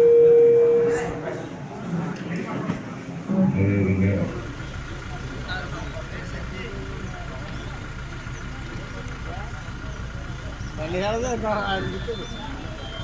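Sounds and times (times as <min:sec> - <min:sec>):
outdoor crowd chatter: 0:00.0 - 0:13.0.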